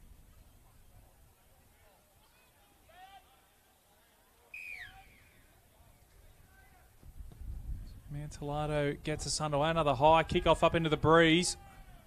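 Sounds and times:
distant voices and calls: 2.0 - 7.0
wind rumbling on microphone: 7.0 - 11.2.

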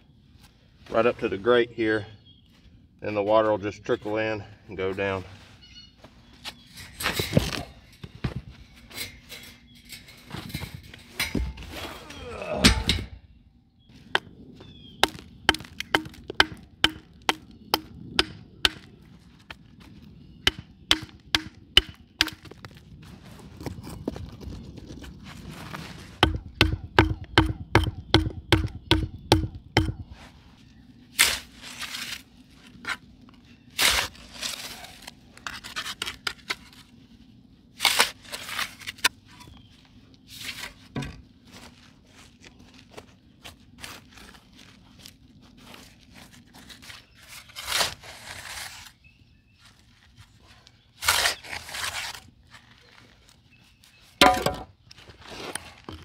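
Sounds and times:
stone and tools knocking: 15.0 - 18.8, 26.2 - 30.1
scraping strikes: 26.1 - 30.3, 54.2 - 54.7.

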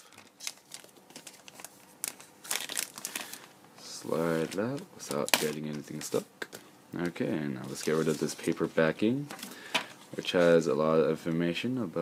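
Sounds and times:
plastic sleeve crinkling: 0.0 - 3.5, 4.2 - 6.2, 7.0 - 10.6.

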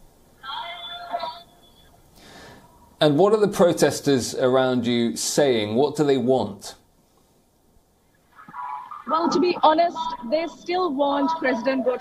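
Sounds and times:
faint steady tones: 0.0 - 3.0, 6.8 - 12.0
person speaking: 8.5 - 12.0.

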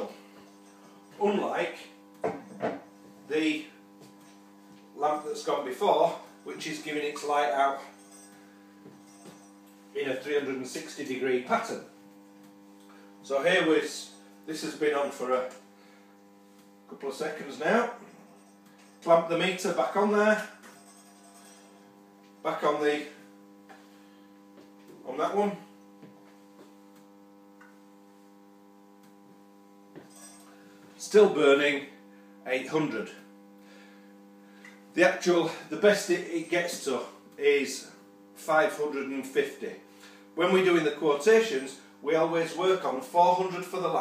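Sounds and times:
faint electrical mains hum: 0.0 - 44.0.

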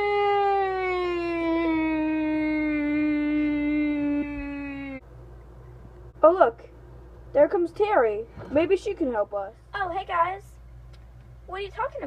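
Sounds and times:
child howling call: 0.0 - 5.0.

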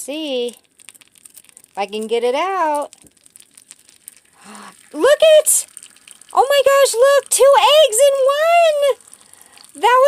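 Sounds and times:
eggshell crackling: 0.0 - 10.0
egg dropping into pan: 0.4 - 8.0.

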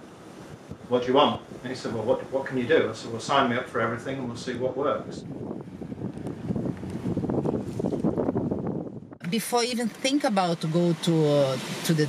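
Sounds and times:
wind buffeting microphone: 0.0 - 9.2
boat engine rumble: 0.0 - 12.0
rushing water: 9.3 - 12.0.

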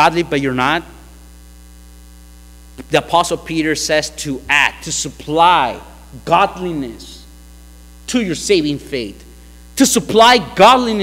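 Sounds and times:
man talking: 0.0 - 1.0, 2.8 - 7.3, 8.1 - 11.0
electrical mains hum: 0.0 - 11.0.

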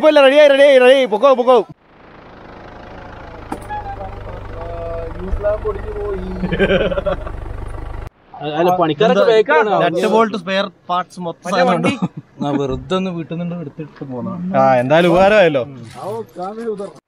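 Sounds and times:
car engine rumbling: 1.5 - 17.0.

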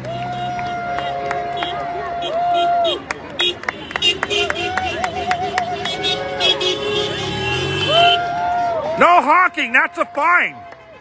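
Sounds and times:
crowd clapping: 0.0 - 7.2, 9.8 - 11.0
car horns honking: 3.4 - 9.1.

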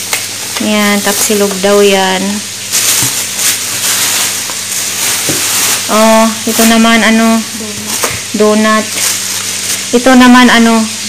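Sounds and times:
plastic containers rustling: 0.4 - 2.0, 2.7 - 9.9
plastic bag crinkling: 0.4 - 10.0.

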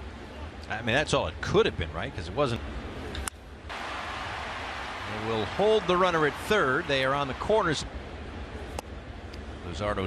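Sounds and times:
ballpark crowd noise: 2.8 - 9.6.

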